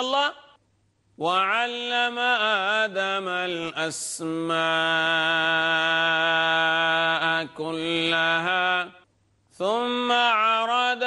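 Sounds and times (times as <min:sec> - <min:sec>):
man chanting melodically: 0:00.0 - 0:00.6, 0:01.2 - 0:09.0, 0:09.6 - 0:11.0.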